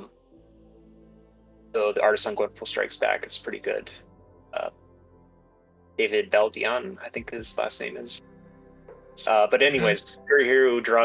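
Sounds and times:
person saying uh: 6.0 - 8.2, 9.3 - 11.0.

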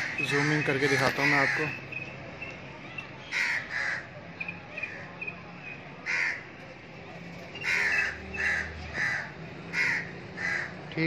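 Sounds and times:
crows cawing: 0.0 - 2.0, 3.2 - 4.2, 6.0 - 6.6, 7.6 - 11.0.

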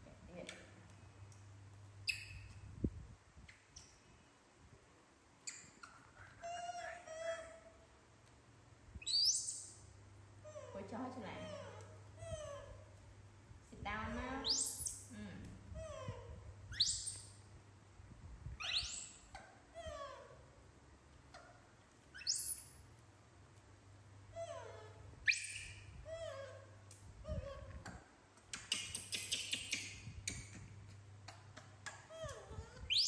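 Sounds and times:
low steady hum: 0.0 - 28.5.

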